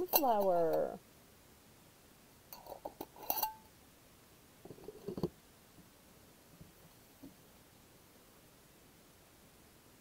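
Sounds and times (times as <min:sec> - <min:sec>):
glass jar clinking: 0:02.6 - 0:03.6.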